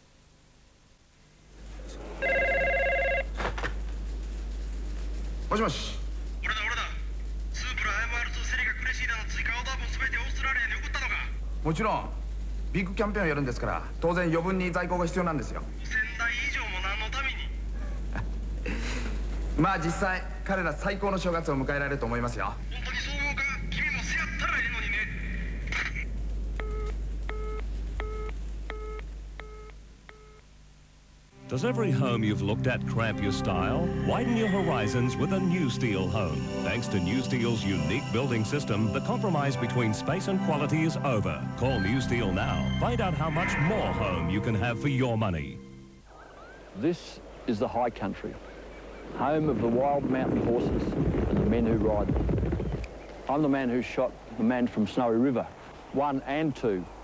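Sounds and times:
low steady hum: 0:00.0 - 0:57.0
telephone busy signal beeps: 0:02.2 - 0:03.3, 0:26.6 - 0:30.4
desk telephone ringing: 0:02.2 - 0:03.4.

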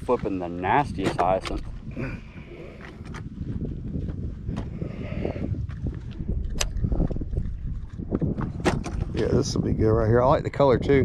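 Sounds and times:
wind buffeting microphone: 0:00.0 - 0:11.0
fishing tackle clicks and knocks: 0:01.0 - 0:01.8, 0:06.4 - 0:09.2.

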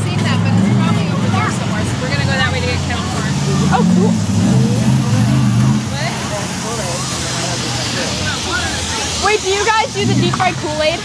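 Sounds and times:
low motor hum: 0:00.0 - 0:09.0
voices talking: 0:00.0 - 0:11.0
outdoor hiss: 0:06.4 - 0:11.0.

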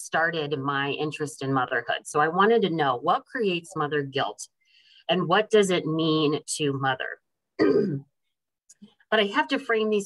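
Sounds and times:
woman clearing her throat: 0:07.6 - 0:08.1.

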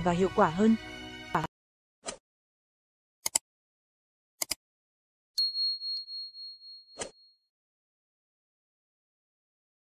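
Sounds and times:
high bright bell ding: 0:05.4 - 0:07.0.

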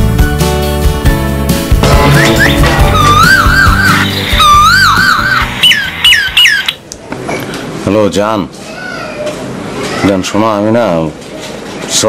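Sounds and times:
background music: 0:00.0 - 0:06.8
phone ringtone: 0:01.9 - 0:06.8.

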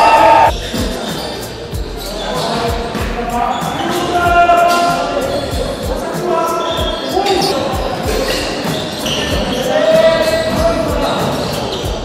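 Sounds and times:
players calling out: 0:00.0 - 0:00.6.

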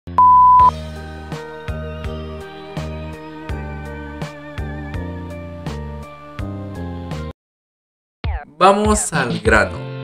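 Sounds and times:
electronic beep: 0:00.2 - 0:00.7
music with low chords: 0:00.7 - 0:07.3.

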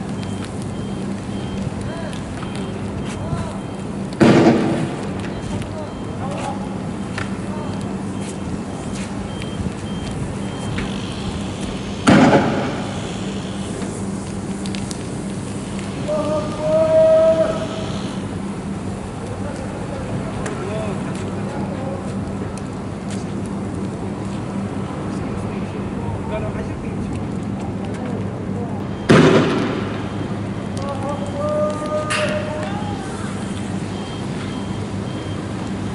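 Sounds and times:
loud bang: 0:04.2 - 0:05.0, 0:12.0 - 0:12.8, 0:29.1 - 0:30.1.

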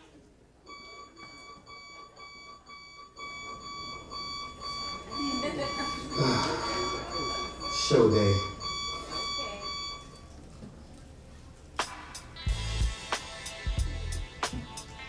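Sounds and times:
digital alarm clock beeping: 0:00.7 - 0:10.3.

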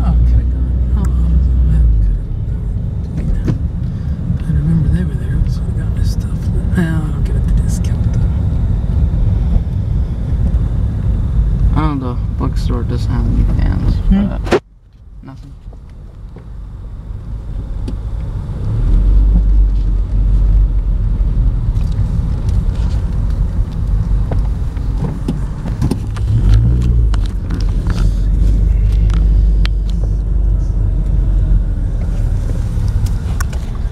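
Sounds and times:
car engine and road rumble: 0:00.0 - 0:33.9.

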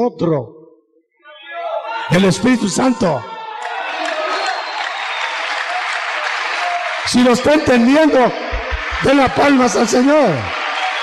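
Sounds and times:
congregation applauding: 0:03.6 - 0:11.0.

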